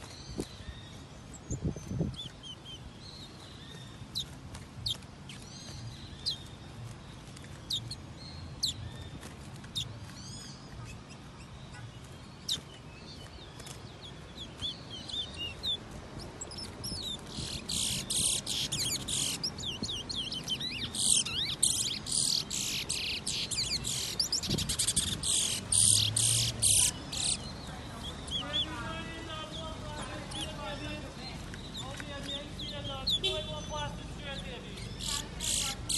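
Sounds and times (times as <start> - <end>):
bird warbling song: 0.0 - 35.9.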